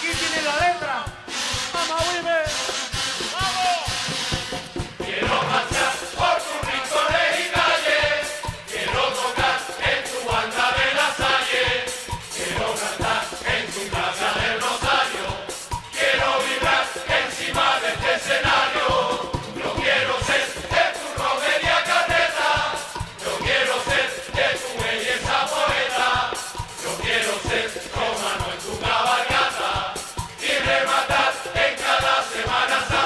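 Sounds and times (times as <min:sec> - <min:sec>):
steady drum beat: 0:00.0 - 0:33.0
kazoo-like whistles: 0:01.3 - 0:04.4
male chorus singing: 0:02.4 - 0:33.0.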